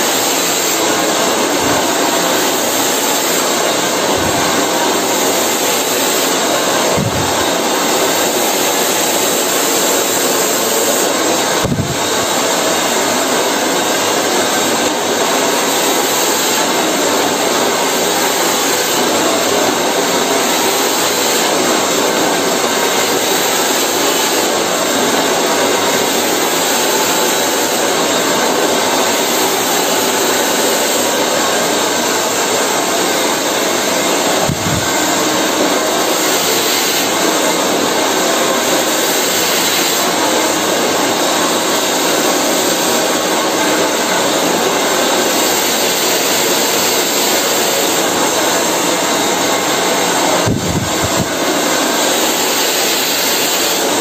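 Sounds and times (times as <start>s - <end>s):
hair dryer running: 0.0s - 54.0s.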